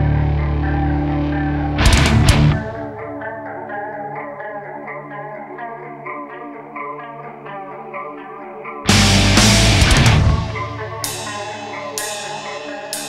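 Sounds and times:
clean electric guitar picking: 0.0s - 13.0s
heavy metal band hits: 1.8s - 2.8s, 8.9s - 13.0s.

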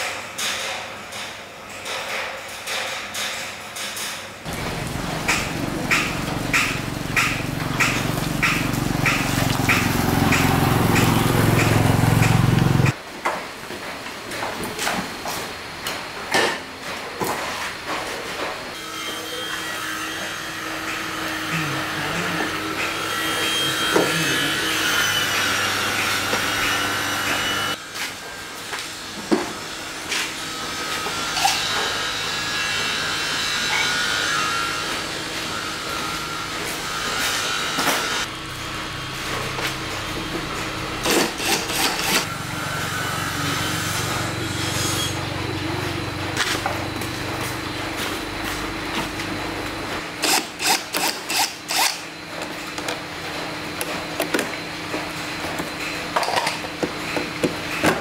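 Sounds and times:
steady machine hum: 4.4s - 13.0s, 35.1s - 58.0s.

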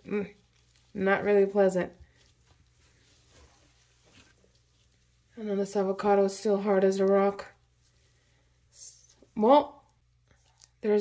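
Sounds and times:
gloved hand rustling in compost: 0.0s - 5.4s.

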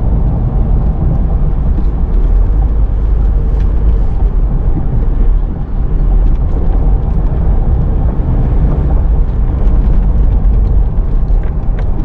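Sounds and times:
car interior road and engine rumble: 0.0s - 12.0s.

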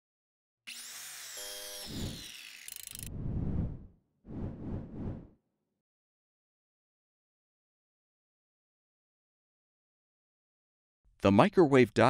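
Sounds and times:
brief buzzing tone: 1.4s - 2.2s.

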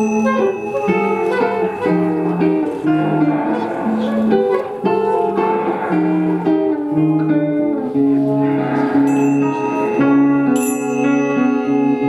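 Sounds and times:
guitar held notes: 0.0s - 12.0s
sustained tones: 0.0s - 12.0s.

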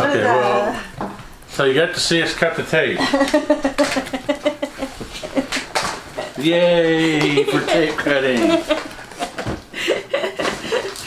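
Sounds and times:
woman laughing: 3.0s - 6.4s, 7.0s - 11.0s.

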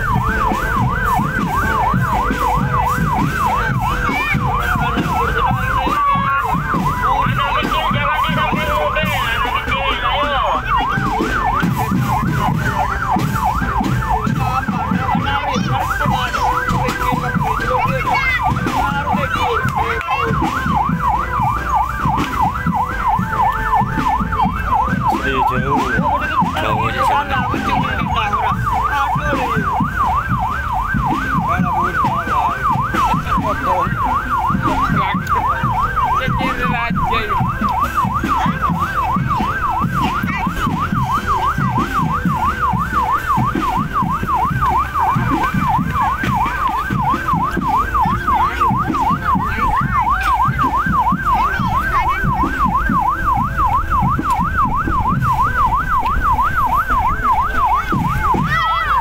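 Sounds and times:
fast warbling electronic siren: 0.0s - 59.0s.

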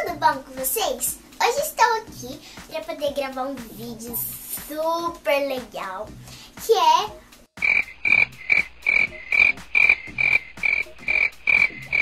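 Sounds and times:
frog croaking: 7.6s - 12.0s.

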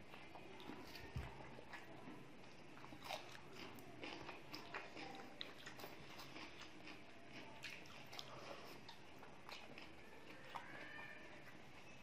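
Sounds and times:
chewing: 0.0s - 12.0s.

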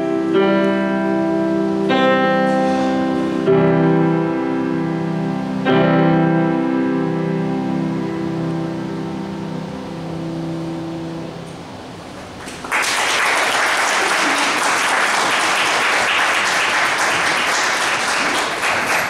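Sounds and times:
grand piano chord: 0.0s - 12.0s
audience applause: 12.4s - 19.0s.

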